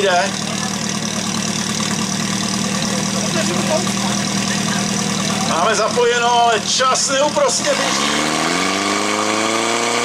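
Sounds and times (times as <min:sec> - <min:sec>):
pump engine humming: 0:00.0 - 0:07.8.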